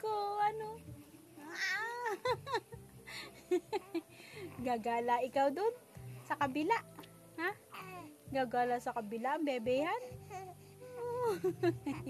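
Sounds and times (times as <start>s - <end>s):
baby cooing: 1.4s - 2.2s, 7.7s - 8.2s.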